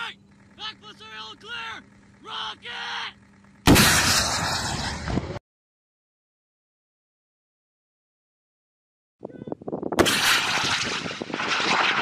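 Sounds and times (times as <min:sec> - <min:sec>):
rocket launch blast: 0:03.7 - 0:05.4, 0:10.0 - 0:12.0
rocket rushing through air: 0:03.7 - 0:05.4, 0:10.0 - 0:12.0.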